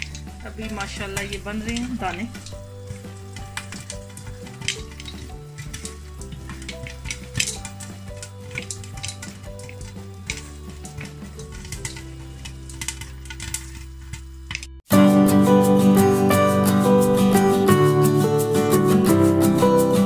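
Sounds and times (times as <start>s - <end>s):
popcorn popping: 0.0s - 15.0s
oil sizzling: 0.0s - 20.0s.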